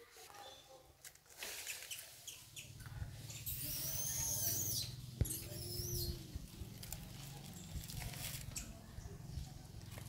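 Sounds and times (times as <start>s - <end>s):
infant monkey squealing: 3.3s - 6.2s.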